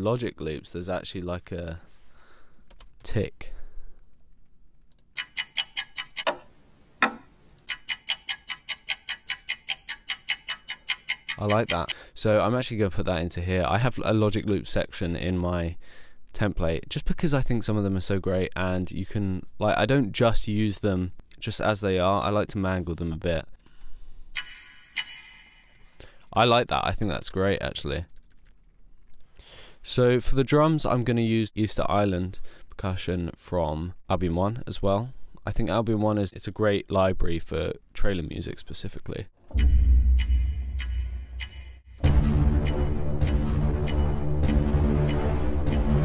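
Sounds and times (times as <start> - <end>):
rapid clock ticks: 5.0 - 6.4, 7.0 - 12.0, 24.4 - 25.8, 39.5 - 46.0
louder single clicks: 39.5 - 41.8.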